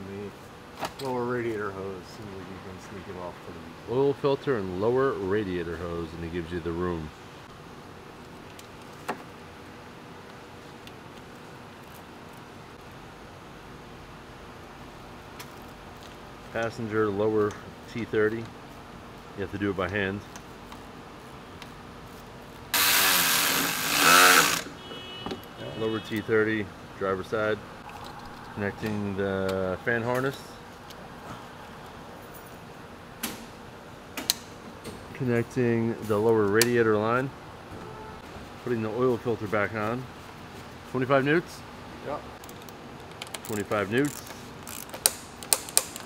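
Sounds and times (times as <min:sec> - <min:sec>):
cordless power tool running: 0:22.8 - 0:24.7
torque wrench clicking: 0:42.4 - 0:46.0.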